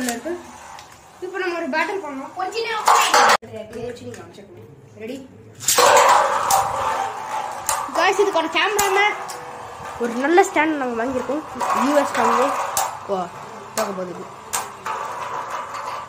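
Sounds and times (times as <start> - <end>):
spinning top scraping metal tray: 0.0 - 3.4, 5.6 - 16.0
voices talking: 6.8 - 15.2.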